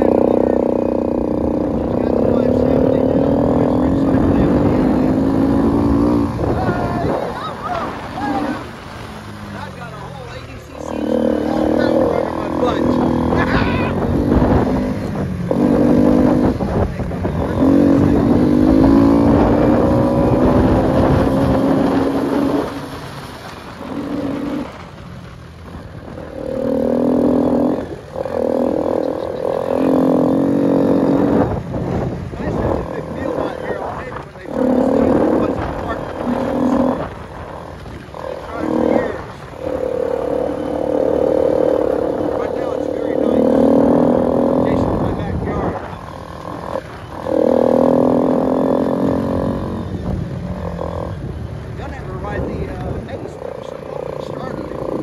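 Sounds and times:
atv engine revving: 0.0 - 55.0
wind rumbling on microphone: 0.0 - 55.0.

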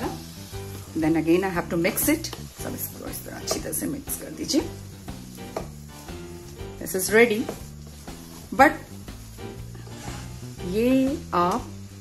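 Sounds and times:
background music with low notes: 0.0 - 12.0.

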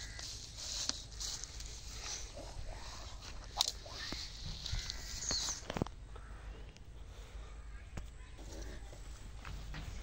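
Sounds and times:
footsteps on grass: 0.0 - 5.9.

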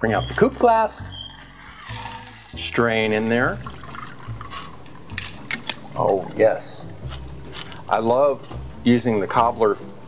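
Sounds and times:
liquid trickling into glass: 1.9 - 6.4.

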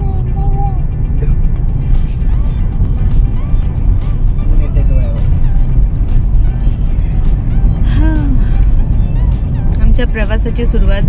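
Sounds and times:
car cabin engine rumble: 0.0 - 11.0
music playing: 0.0 - 11.0.

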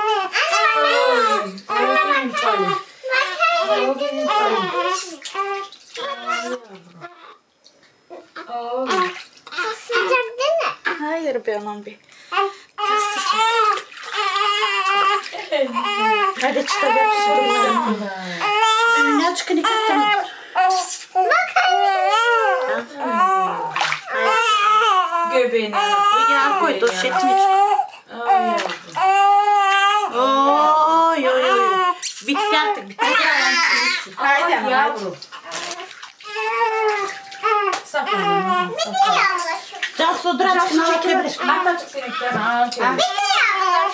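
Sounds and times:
newborn baby crying: 0.0 - 7.4, 12.3 - 39.9, 40.5 - 43.9
water splashing in baby bathtub: 0.0 - 43.9.

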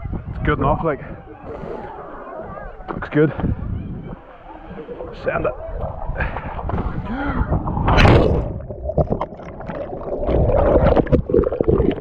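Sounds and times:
underwater churning and gurgling: 0.0 - 12.0.

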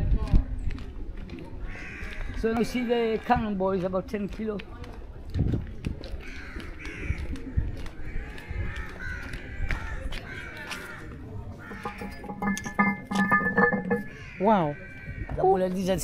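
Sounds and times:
crows cawing: 1.7 - 2.4, 8.7 - 12.9, 13.5 - 15.5
steady ringing tone: 11.6 - 14.3.

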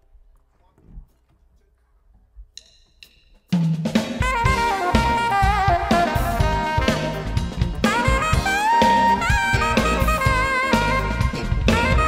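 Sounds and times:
jazz quartet playing: 4.2 - 12.0.

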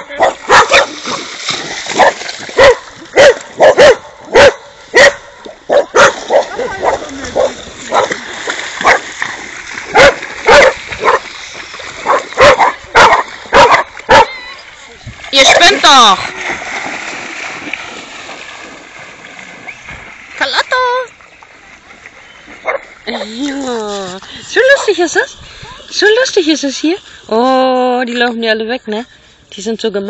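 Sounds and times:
dog barking: 0.1 - 1.2, 2.0 - 8.2, 8.8 - 9.0, 9.9 - 11.3, 12.0 - 14.4, 22.6 - 22.9.

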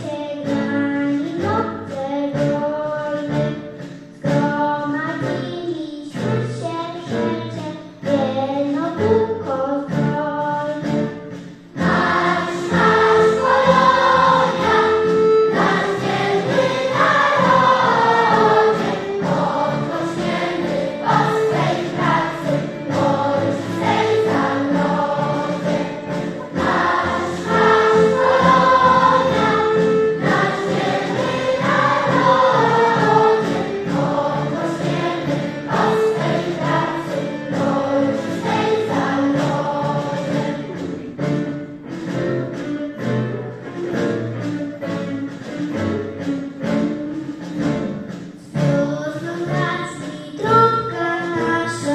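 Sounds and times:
choir singing: 11.8 - 40.9.

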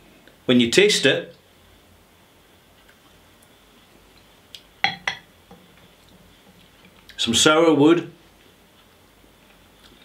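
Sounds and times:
sharp knocks of glass on wood: 4.8 - 5.2.

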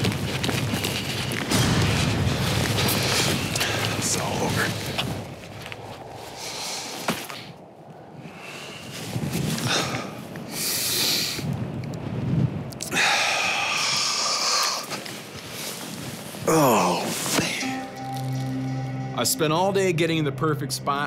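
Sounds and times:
man breathing hard: 8.2 - 11.5, 12.8 - 14.9.

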